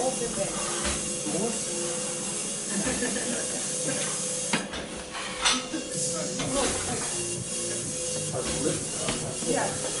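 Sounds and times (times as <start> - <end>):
faint music: 0.0 - 10.0
room noise hiss and hum: 0.0 - 10.0.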